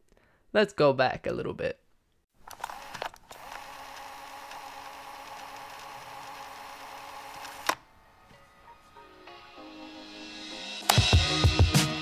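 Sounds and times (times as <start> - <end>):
mechanical whir with held tones: 2.5 - 7.8.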